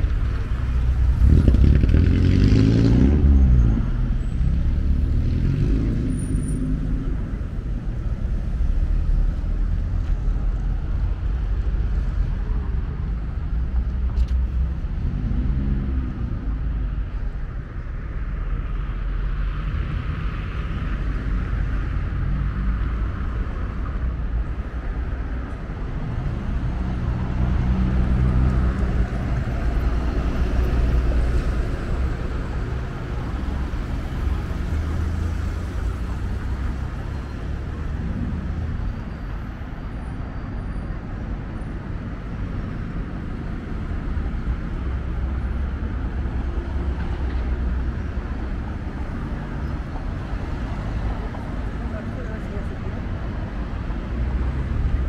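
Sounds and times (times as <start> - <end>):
low traffic rumble: 0.0 - 55.0
vehicles passing by: 0.0 - 55.0.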